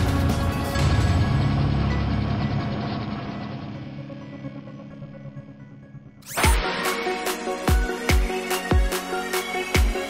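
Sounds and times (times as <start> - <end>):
sustained musical tones: 0.0 - 9.3.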